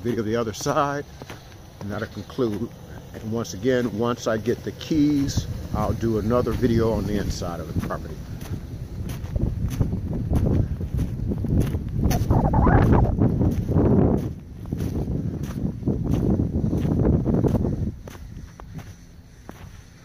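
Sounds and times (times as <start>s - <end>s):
footsteps in snow: 0.0s - 20.0s
wind rumbling on microphone: 4.9s - 19.7s.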